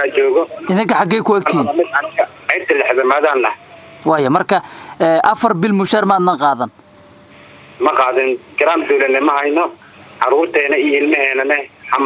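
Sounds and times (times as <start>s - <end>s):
man speaking over radio: 0.0s - 5.2s, 7.8s - 12.0s.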